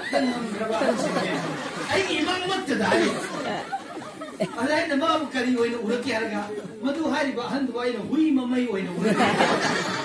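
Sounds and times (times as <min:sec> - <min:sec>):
man talking into a microphone: 0:00.0 - 0:03.6, 0:04.4 - 0:09.4
chatter of voices: 0:00.0 - 0:07.2.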